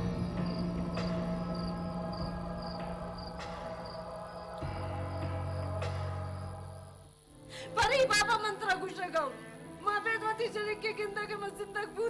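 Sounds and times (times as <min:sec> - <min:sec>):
steady low drone: 0:00.0 - 0:07.2
crickets chirping: 0:00.0 - 0:12.0.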